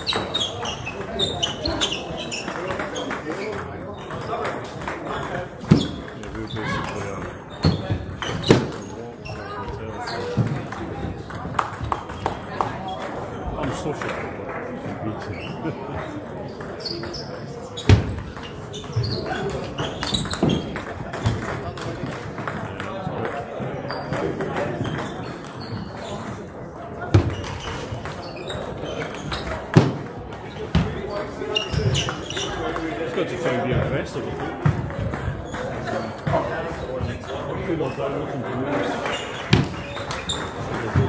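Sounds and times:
murmur of voices: 0.0 - 41.0
table tennis ball strikes: 17.8 - 25.2.

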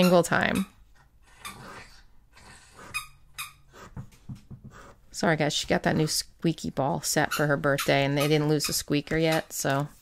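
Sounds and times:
squeaky toy squeaking: 2.9 - 3.6, 7.2 - 9.5.

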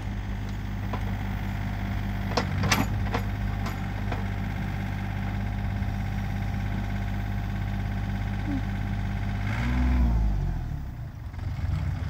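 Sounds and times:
excavator diesel engine idling: 0.0 - 12.0.

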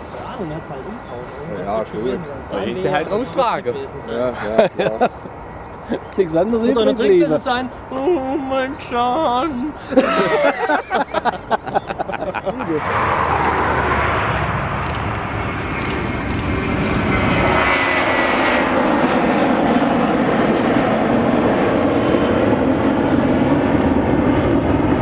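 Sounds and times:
high engine whine: 0.0 - 25.0
jet engines at takeoff: 0.0 - 25.0.

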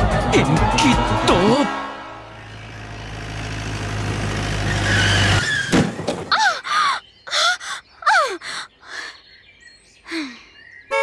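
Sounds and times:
woman gasping and grunting: 6.3 - 9.2.

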